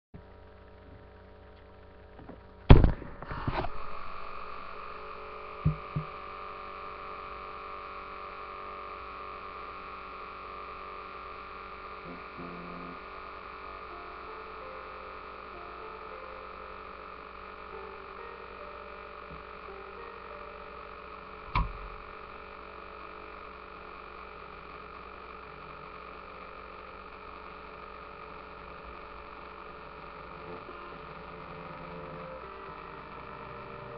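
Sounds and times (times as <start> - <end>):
steady electrical hum: 0.2 - 33.9.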